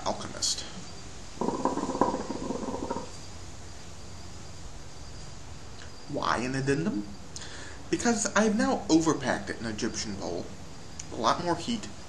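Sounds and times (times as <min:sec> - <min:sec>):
faint background hiss: 0:00.0 - 0:12.0
hookah water bubbling: 0:01.4 - 0:03.2.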